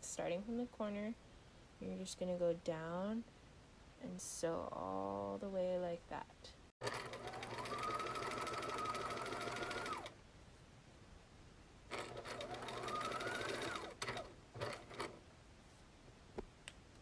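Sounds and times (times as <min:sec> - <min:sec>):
sewing machine stitching: 0:06.8 - 0:10.1, 0:11.9 - 0:15.2.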